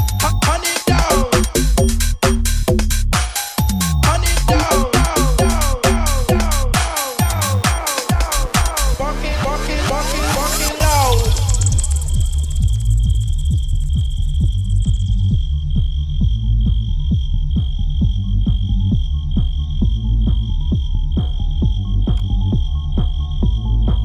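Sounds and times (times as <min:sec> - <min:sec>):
heavy bass dance beat: 0:00.0 - 0:24.0
high-pitched synth tone pulsing: 0:10.1 - 0:15.4.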